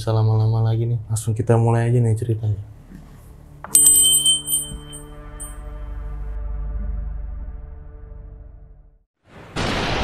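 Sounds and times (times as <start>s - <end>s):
bell ringing: 3.7s - 5.6s.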